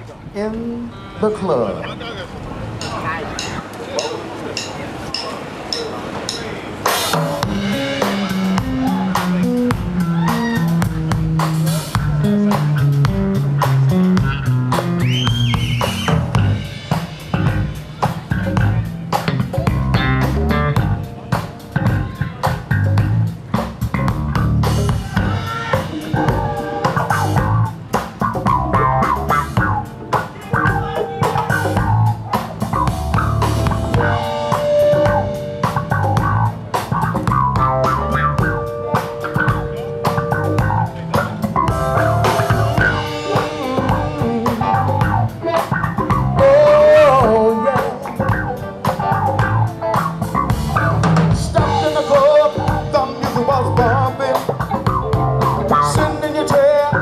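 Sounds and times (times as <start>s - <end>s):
drum kit beat: 2.8s - 57.0s
bass guitar: 6.3s - 57.0s
electric guitar: 7.1s - 57.0s.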